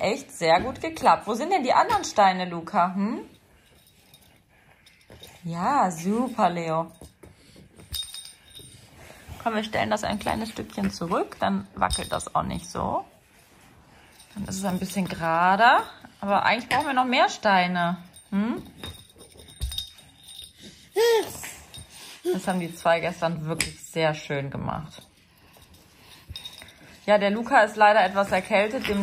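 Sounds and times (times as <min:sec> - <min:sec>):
bright clinking ring: 0:07.8 - 0:08.9, 0:18.0 - 0:23.0, 0:24.9 - 0:27.0.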